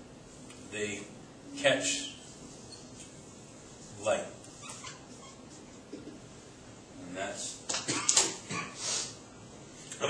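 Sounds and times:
marker squeaking on whiteboard: 2.6s - 3.1s, 4.4s - 5.7s.

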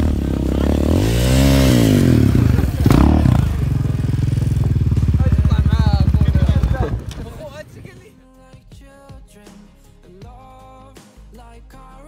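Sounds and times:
quad bike engine revving: 0.0s - 8.0s.

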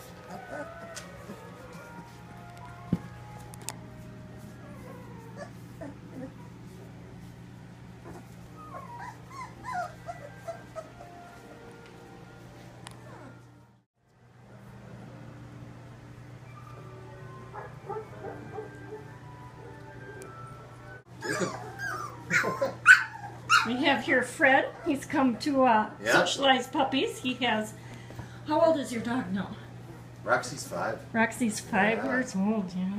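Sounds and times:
puppies whimpering: 0.0s - 2.2s, 4.4s - 7.1s, 8.0s - 11.5s, 13.0s - 13.5s, 21.2s - 25.5s.

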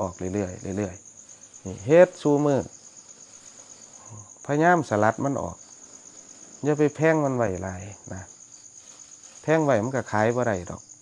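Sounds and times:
crickets trilling: 0.0s - 11.0s.

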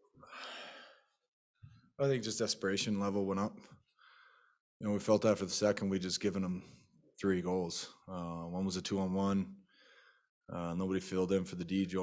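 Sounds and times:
man sighing: 0.3s - 0.9s.

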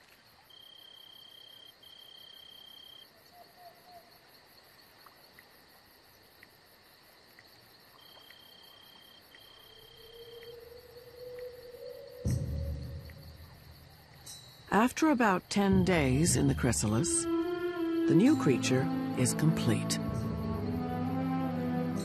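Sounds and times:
cricket trills: 0.0s - 22.0s
insect high buzz: 7.9s - 14.8s, 16.7s - 22.0s.

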